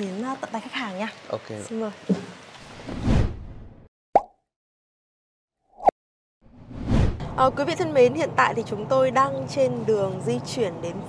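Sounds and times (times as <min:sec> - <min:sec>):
pitched plop sound effects: 0:04.1 - 0:04.4.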